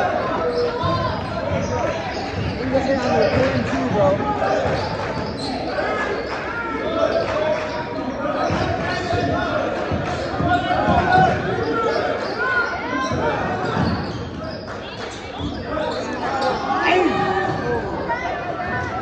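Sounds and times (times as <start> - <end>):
sneakers squeaking: 0.0 - 19.0
voices in a gym: 0.0 - 19.0.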